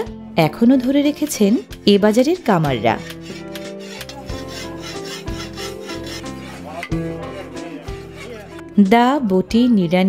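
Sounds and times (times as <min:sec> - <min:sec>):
steel file rasping on iron blade: 0:01.2 - 0:08.7.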